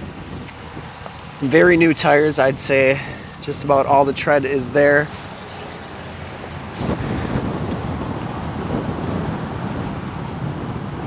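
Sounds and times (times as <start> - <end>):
outdoor rushing noise: 0.0 - 11.0.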